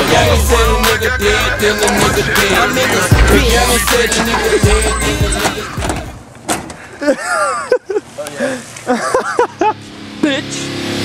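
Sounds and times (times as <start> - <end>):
people exclaiming and talking: 2.2 - 5.8.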